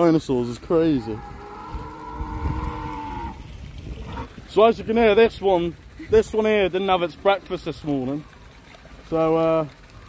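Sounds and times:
recorded dinosaur call: 0.9 - 3.4.

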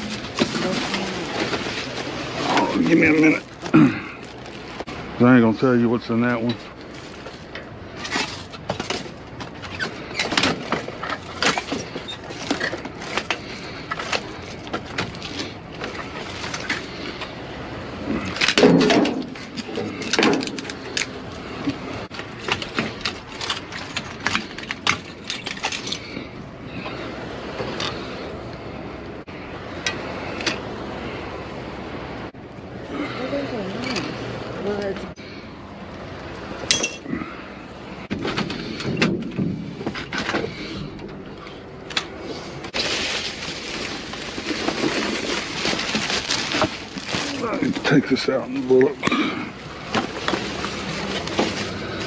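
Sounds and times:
plastic trash bags rustling: 0.0 - 5.0, 6.7 - 17.2, 42.6 - 52.0.

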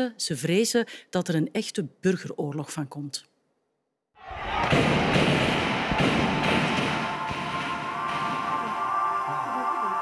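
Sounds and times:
background music: 4.2 - 10.0.

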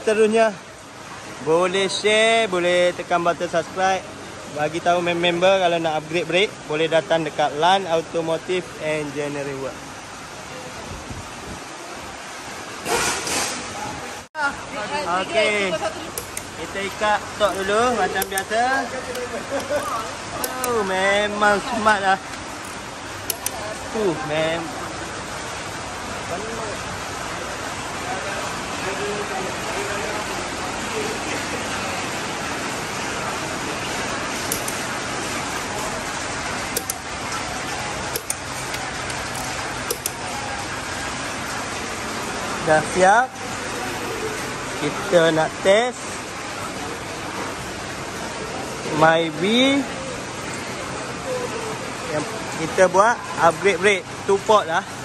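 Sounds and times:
workshop background noise: 0.0 - 55.0
lug wrench metallic clicks: 16.1 - 21.0, 22.3 - 23.7, 34.4 - 35.0, 36.7 - 37.4, 38.0 - 40.3.

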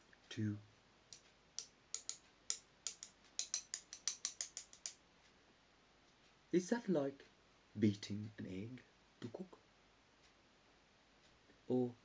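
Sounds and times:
wooden chopsticks clicking together: 1.1 - 5.0.

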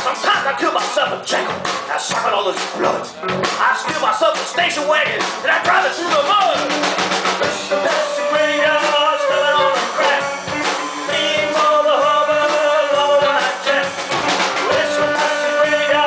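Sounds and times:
blues-rock band playing: 0.0 - 16.0
steady drum beat: 0.0 - 16.0
electric guitar bending notes: 6.0 - 16.0.

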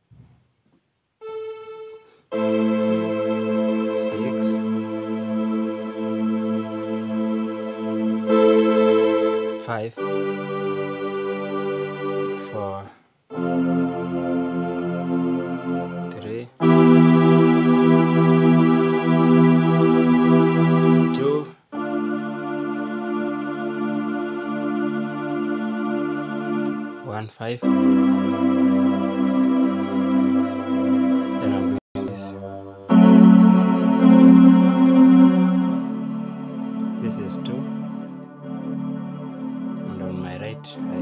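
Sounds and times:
keyboard string chords: 1.2 - 41.0.

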